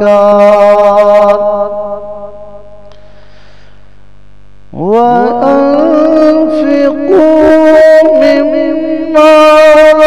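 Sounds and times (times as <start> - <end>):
man chanting: 0.0 - 2.8, 4.7 - 10.0
electrical mains hum: 0.0 - 10.0.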